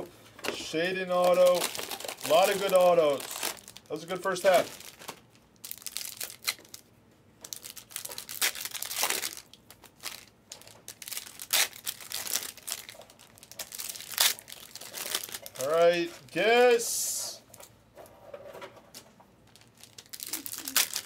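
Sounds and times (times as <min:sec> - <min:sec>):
wrappers crinkling and tearing: 0:01.1 - 0:16.2, 0:19.4 - 0:21.0.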